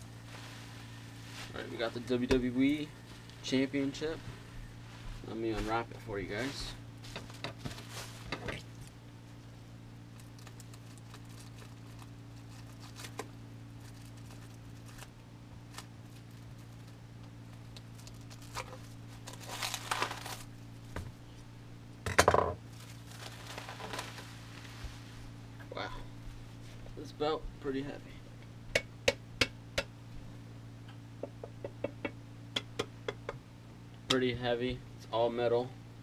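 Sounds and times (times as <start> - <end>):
steady low hum: 0.0 - 36.0
plastic wrapping crinkling: 6.4 - 9.0, 10.1 - 21.0, 22.7 - 24.8.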